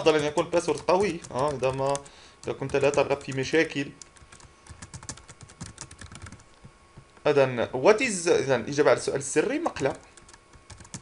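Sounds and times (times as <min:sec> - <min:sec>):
keyboard typing clicks: 0:00.0 - 0:03.4, 0:04.0 - 0:06.7, 0:10.1 - 0:11.0.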